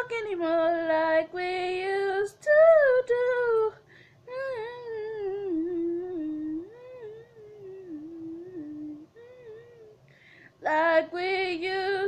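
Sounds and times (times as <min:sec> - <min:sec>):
woman singing unaccompanied: 0:00.0 - 0:10.0, 0:10.6 - 0:12.0
wordless humming: 0:04.3 - 0:10.0
quick breath: 0:10.1 - 0:10.6.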